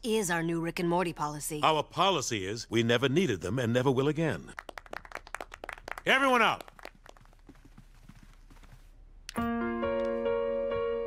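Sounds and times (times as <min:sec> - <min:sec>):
faint footsteps of people walking: 0:05.8 - 0:10.2.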